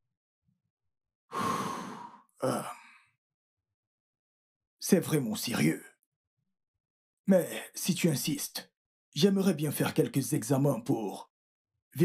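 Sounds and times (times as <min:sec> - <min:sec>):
man sighing heavily: 0:01.3 - 0:03.0.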